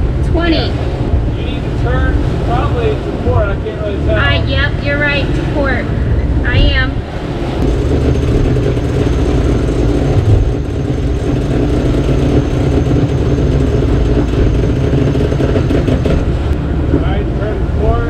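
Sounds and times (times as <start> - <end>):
water running along hulls: 0.0 - 18.0.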